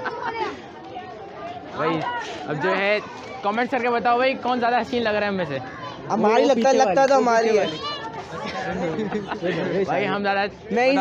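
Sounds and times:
teenage boys talking: 0.0s - 11.0s.

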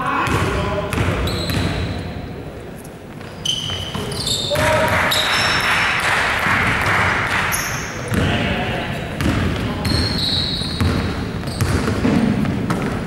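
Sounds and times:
sneakers squeaking: 0.0s - 6.1s, 7.3s - 13.0s
basketball bouncing: 0.2s - 1.9s, 8.0s - 13.0s.

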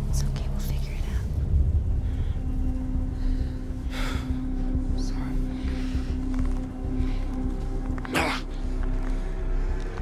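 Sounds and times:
low rumble and hum: 0.0s - 10.0s
person whispering: 4.9s - 5.8s.

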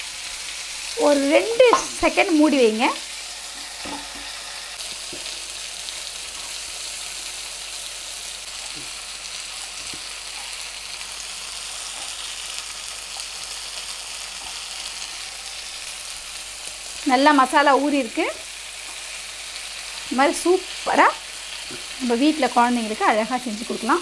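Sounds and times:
chicken sizzling in a pan: 0.0s - 24.0s.

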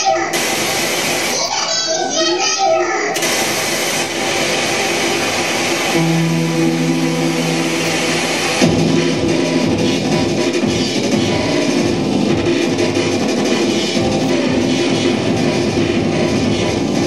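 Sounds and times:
electric guitar: 5.9s - 9.6s
steady low note held: 5.9s - 12.2s
live band playing: 6.0s - 16.3s.

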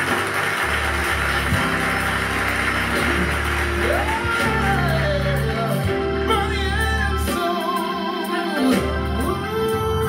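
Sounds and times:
gospel backing track chords: 0.0s - 10.0s
person singing: 3.8s - 10.0s.

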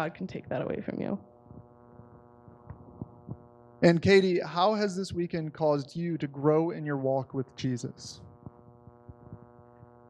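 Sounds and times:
faint mains hum: 0.0s - 10.0s
man speaking: 3.8s - 8.2s.

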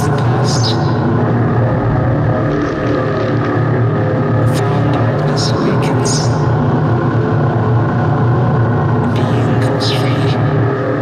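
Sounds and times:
electronic drone: 0.0s - 11.0s.

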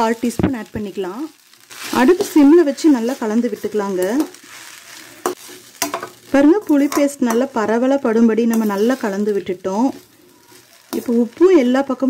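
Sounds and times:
spoon stirring rice in pan: 1.3s - 11.6s.

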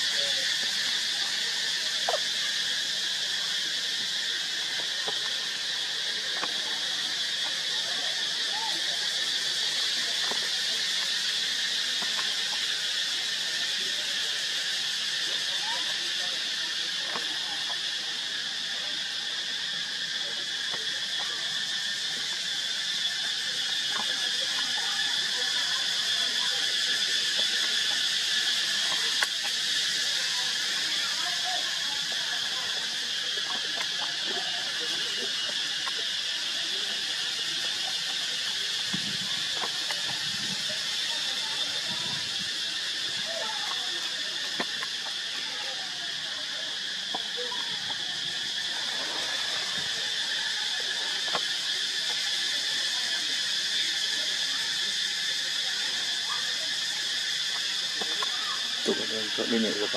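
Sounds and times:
insect chorus drone: 0.0s - 59.9s.

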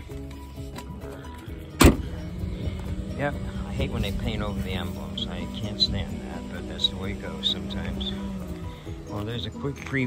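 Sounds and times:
background music: 0.0s - 10.0s
car door slamming: 1.8s - 2.2s.

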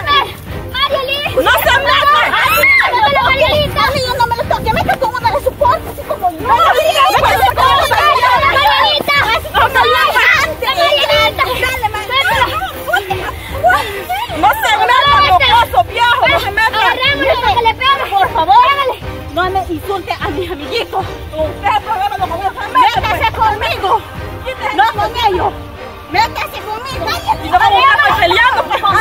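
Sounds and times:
women and children shouting: 0.0s - 29.0s.

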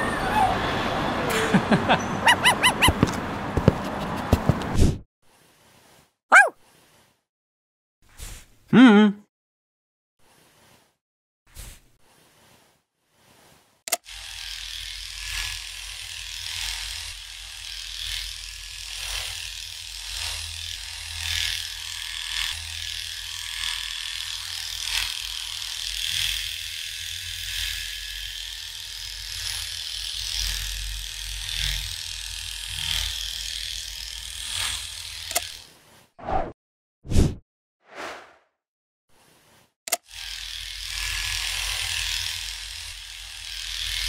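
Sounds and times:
trimmer cutting rasp through fur: 1.3s - 4.9s, 6.3s - 6.6s, 13.9s - 36.2s, 39.2s - 44.0s
electric hair trimmer buzzing: 13.9s - 35.7s, 39.9s - 44.0s.

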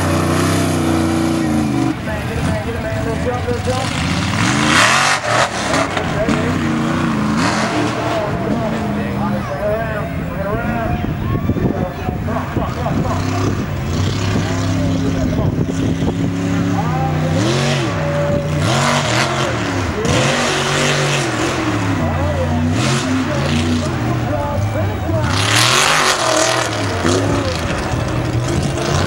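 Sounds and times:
truck engine revving: 0.0s - 29.0s.

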